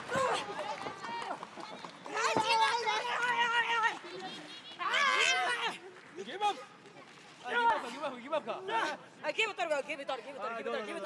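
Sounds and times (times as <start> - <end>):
women shouting: 4.8 - 5.8.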